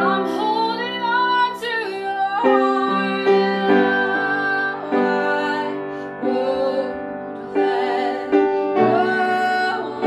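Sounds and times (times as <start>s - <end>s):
woman singing: 0.0s - 10.0s.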